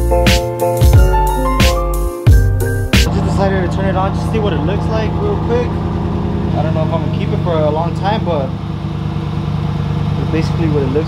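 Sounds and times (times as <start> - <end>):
background music with beat and keyboard: 0.0 - 3.2
pickup engine idling: 3.1 - 11.0.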